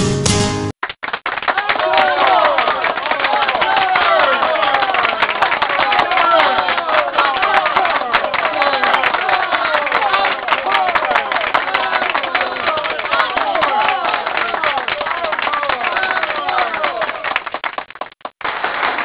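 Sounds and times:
audience clapping: 0.8 - 19.0
crowd calling out and cheering: 1.4 - 17.4.

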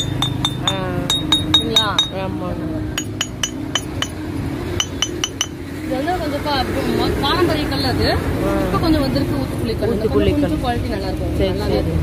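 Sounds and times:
clinking taps on stone mortar: 0.0 - 2.2, 3.0 - 4.2, 4.8 - 5.6.

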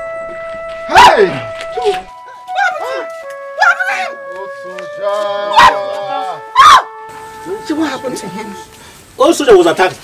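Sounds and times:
sad film music: 0.0 - 9.1.

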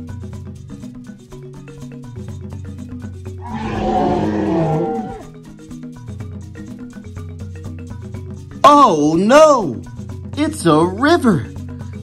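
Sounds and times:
dinosaur call: 3.4 - 5.3.

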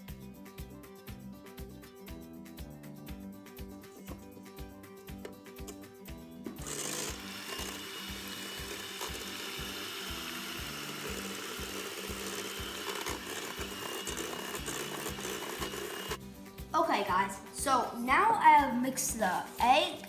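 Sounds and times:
background music with steady beat: 0.0 - 20.0
electric hand mixer whisking: 6.6 - 16.2.

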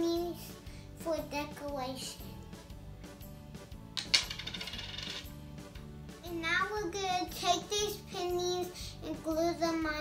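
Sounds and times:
coin dropping on hard table: 3.9 - 5.4.

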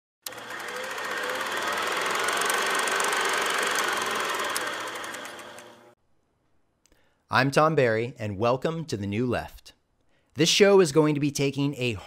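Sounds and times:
small machine clattering: 0.3 - 5.8.

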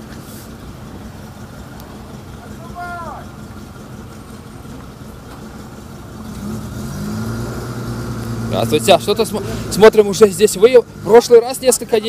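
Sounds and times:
tyre noise on wet street: 0.0 - 12.0
van engine approaching: 0.0 - 12.0
vehicle engines humming: 0.0 - 12.0.

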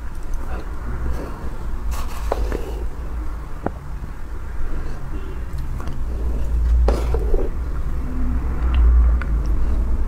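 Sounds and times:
steady low rumble: 0.0 - 10.0
mouth sounds of eating: 4.7 - 7.9.

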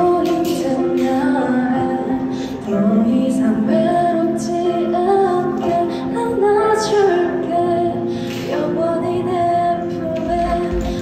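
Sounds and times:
girl singing a slow ballad: 0.0 - 11.0
soft musical accompaniment: 0.0 - 11.0.

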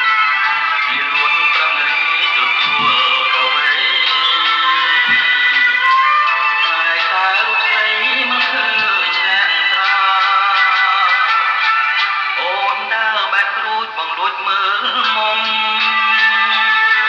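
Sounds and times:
instrumental accompaniment: 0.0 - 17.0
man singing: 0.0 - 17.0.

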